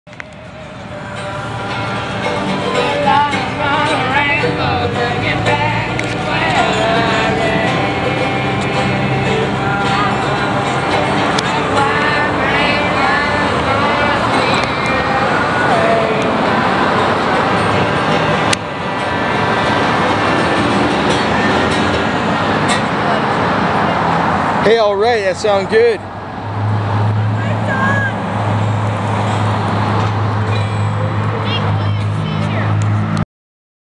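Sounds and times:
gliding melody line: 0.1 - 24.5
guitar chords: 0.1 - 24.6
low engine hum: 0.1 - 24.6
road traffic noise: 0.1 - 33.2.

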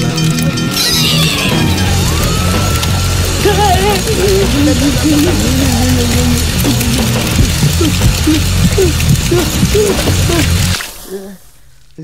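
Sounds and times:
cartoon background music: 0.0 - 10.8
high falling cry: 0.7 - 5.5.

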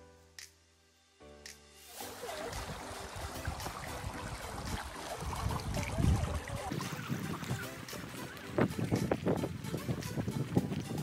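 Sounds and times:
faint background music: 0.0 - 11.0
running stream: 1.8 - 11.0
wind buffeting microphone: 2.6 - 11.0
footsteps on dirt trail: 7.1 - 11.0.

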